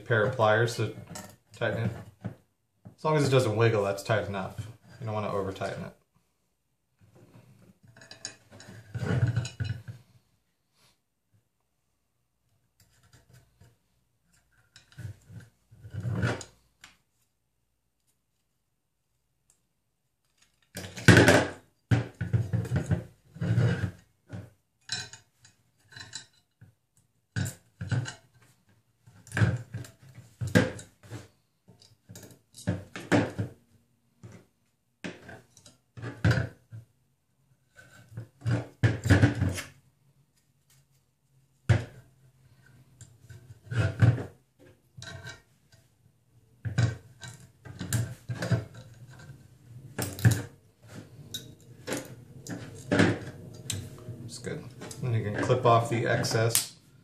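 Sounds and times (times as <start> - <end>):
metal parts clattering on table: 7.9 - 9.9, 24.9 - 26.4.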